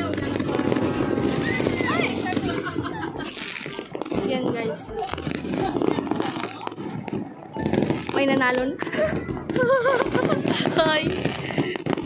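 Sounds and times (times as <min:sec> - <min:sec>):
voices: 0:00.0 - 0:11.7
firecrackers popping: 0:00.0 - 0:12.0
music: 0:00.0 - 0:12.0.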